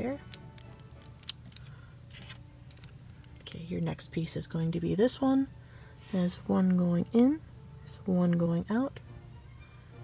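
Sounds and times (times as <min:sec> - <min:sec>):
plastic pieces clicking and scraping: 0:00.2 - 0:03.6.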